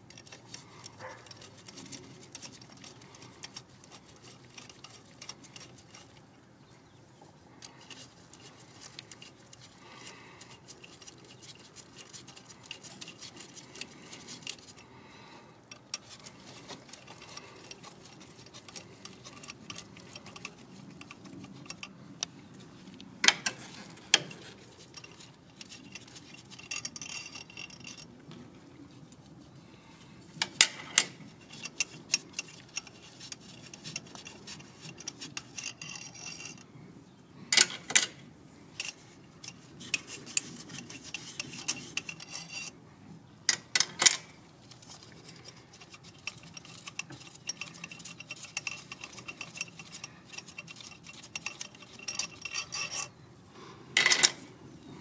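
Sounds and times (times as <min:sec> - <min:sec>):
metallic clicks of tools: 0:43.5 - 0:53.1.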